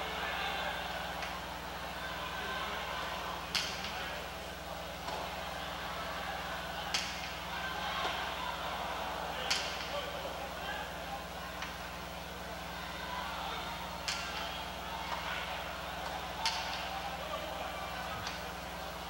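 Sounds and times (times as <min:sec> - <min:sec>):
crowd chatter: 0:00.0 - 0:19.0.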